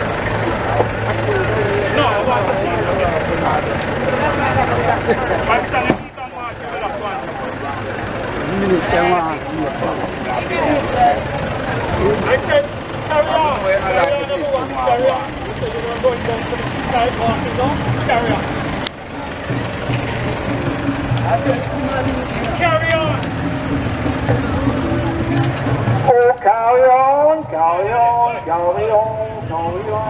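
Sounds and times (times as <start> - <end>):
people talking over each other: 0.0 - 30.0
vehicle engine idling: 0.0 - 30.0.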